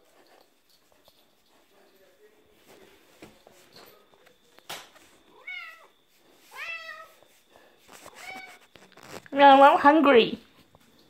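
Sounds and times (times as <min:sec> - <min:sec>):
cat meowing: 0:05.3 - 0:05.9, 0:06.5 - 0:07.2, 0:08.1 - 0:08.7.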